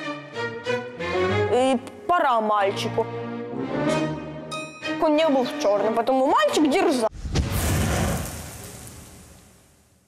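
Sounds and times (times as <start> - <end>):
orchestral music with brass: 0.0 - 7.1.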